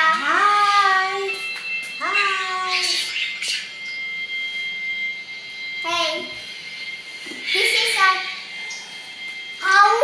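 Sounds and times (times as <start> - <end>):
steady high-pitched tone: 0.0 - 10.0.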